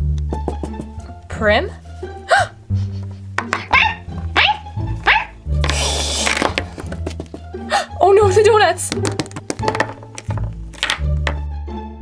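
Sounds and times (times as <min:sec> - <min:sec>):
background music with bass line: 0:00.0 - 0:12.0
high dog yips: 0:03.6 - 0:05.4.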